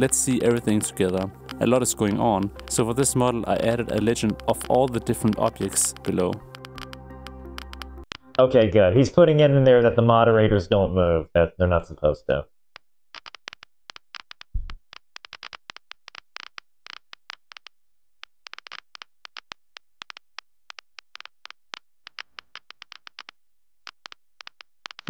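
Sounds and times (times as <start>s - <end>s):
rapid irregular clicks: 0.0s - 8.4s, 12.8s - 25.0s.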